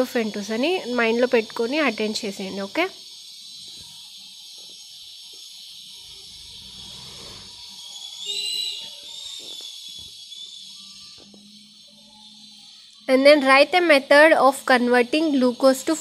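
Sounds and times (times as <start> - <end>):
high whistling tone: 0.0 - 14.6.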